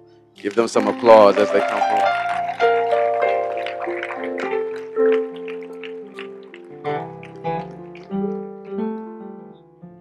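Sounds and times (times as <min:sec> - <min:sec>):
soft keyboard chords: 0:00.0 - 0:10.0.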